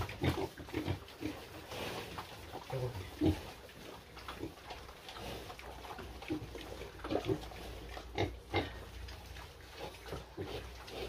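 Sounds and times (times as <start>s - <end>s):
piglets grunting: 2.7s - 3.5s, 7.0s - 8.9s.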